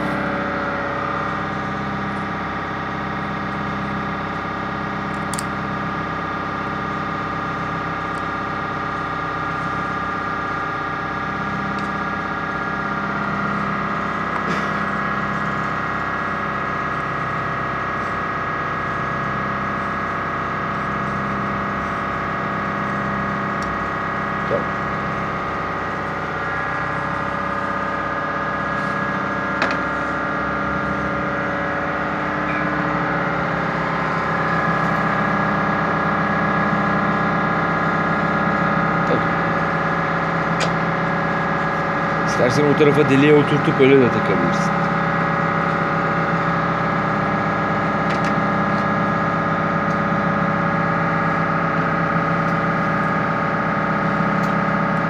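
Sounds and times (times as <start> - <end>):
machine humming with low pulse: 0.0 - 55.0.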